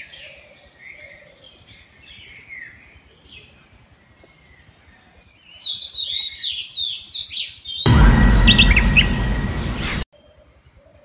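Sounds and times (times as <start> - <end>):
loud rushing noise with rumble: 7.9 - 10.0.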